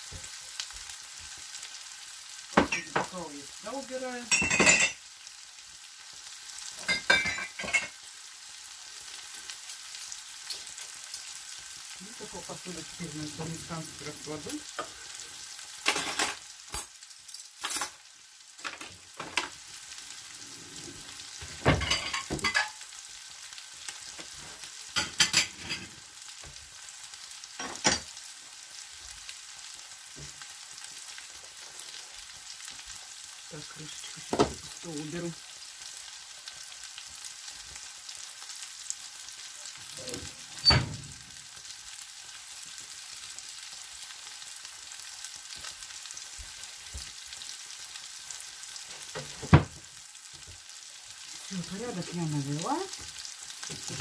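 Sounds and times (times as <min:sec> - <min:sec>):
vegetables sizzling in a pan: 0:00.0 - 0:54.0.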